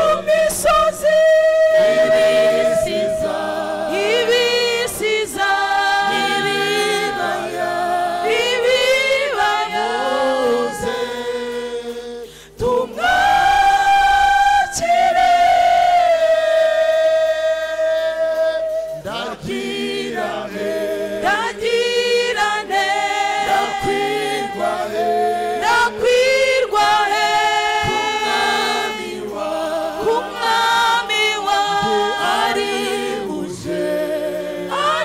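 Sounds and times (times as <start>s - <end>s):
mixed choir singing a hymn: 0.0s - 35.0s.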